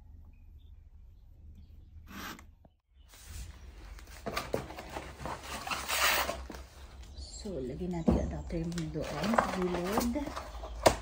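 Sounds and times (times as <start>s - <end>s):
plastic and cardboard packaging rustling: 3.2s - 7.1s, 8.4s - 11.0s.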